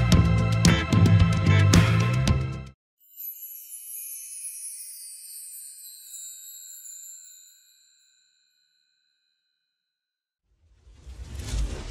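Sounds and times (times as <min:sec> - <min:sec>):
ringing chime: 0:03.0 - 0:10.2
low rumbling whoosh: 0:10.6 - 0:11.9.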